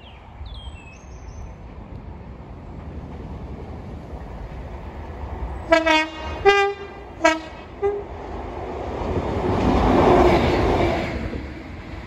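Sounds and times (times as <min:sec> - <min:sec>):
locomotive engine and wheels passing: 0:00.0 - 0:12.0
two-tone locomotive horn toots: 0:05.7 - 0:08.1.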